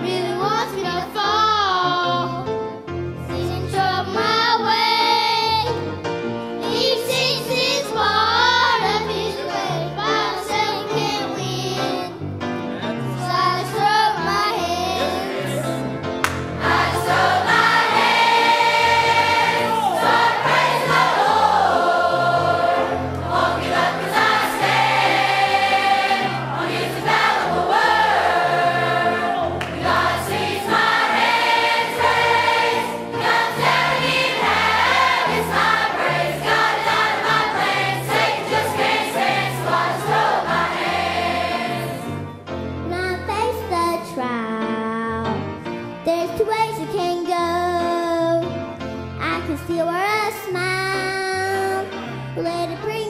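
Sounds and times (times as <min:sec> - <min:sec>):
choir singing gospel song: 0:06.7 - 0:10.6, 0:15.0 - 0:42.3.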